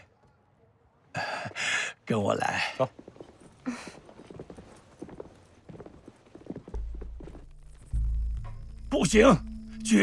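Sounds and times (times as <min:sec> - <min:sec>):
footsteps on stone paving: 0:02.5 - 0:08.0.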